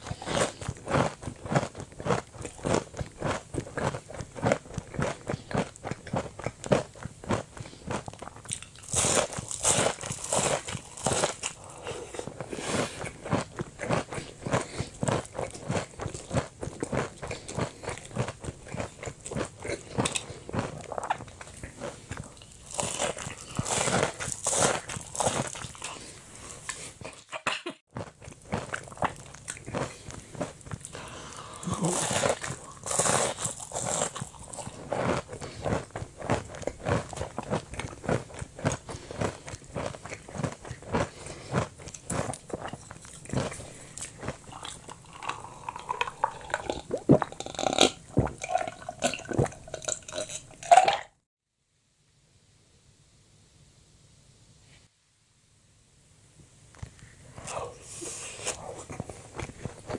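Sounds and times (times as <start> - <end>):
crunchy chewing of fried food: 0.0 - 50.7, 56.8 - 59.9
faint room hiss: 0.0 - 59.9.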